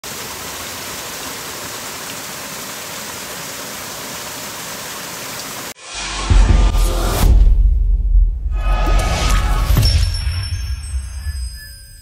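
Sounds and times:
stream water rushing through trap: 0.0s - 5.8s.

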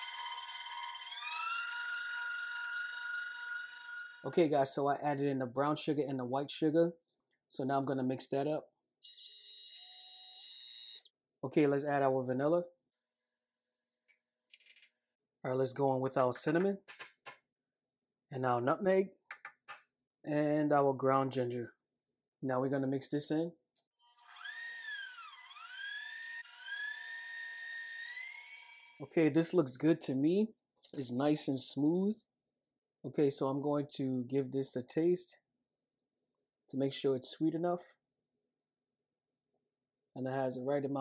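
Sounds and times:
stand mixer motor whine: 24.4s - 28.8s.

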